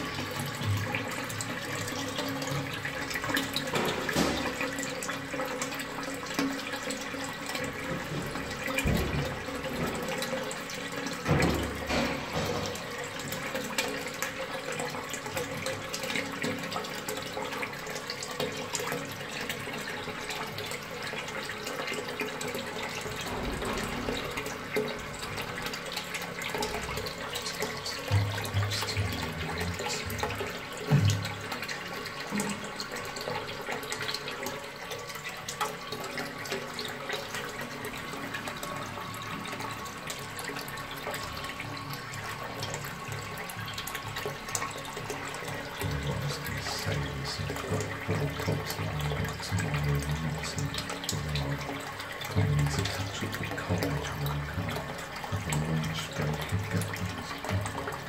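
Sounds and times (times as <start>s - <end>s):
toilet cistern refilling: 0.0s - 58.0s.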